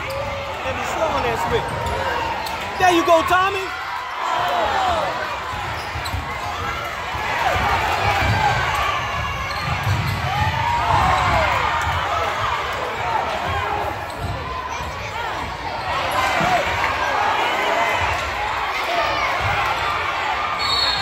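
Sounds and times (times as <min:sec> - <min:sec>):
crowd voices: 0:00.0 - 0:21.0
sneakers squeaking on gym floor: 0:01.1 - 0:03.3, 0:05.5 - 0:06.9, 0:08.1 - 0:11.4
basketball bouncing: 0:05.4 - 0:15.6.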